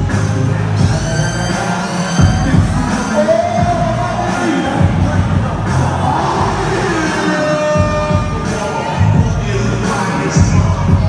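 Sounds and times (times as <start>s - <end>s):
loud live music: 0.0s - 11.0s
person singing: 0.8s - 11.0s.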